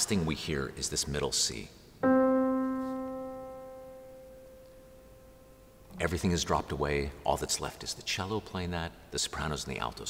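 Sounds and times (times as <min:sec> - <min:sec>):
piano note ringing: 0:02.0 - 0:05.9.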